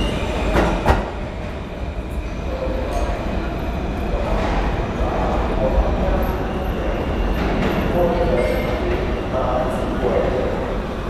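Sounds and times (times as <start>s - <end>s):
subway train rumbling: 0.0s - 11.0s.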